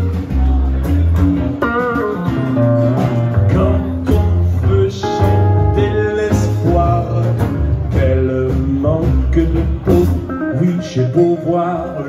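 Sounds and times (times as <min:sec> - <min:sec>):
guitar notes and chords: 0:00.0 - 0:12.0
person singing: 0:00.0 - 0:12.0
upright double bass: 0:00.0 - 0:12.0.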